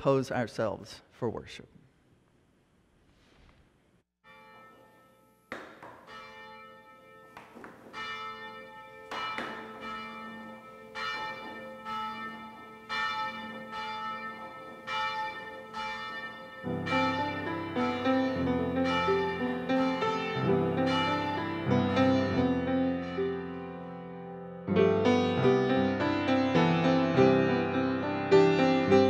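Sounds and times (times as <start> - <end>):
church bells ringing: 4.2 - 29.0.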